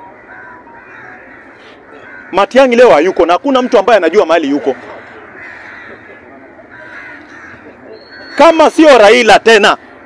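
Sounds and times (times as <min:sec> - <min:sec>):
crows cawing faintly: 0:00.0 - 0:10.0
low outdoor background noise: 0:00.0 - 0:10.0.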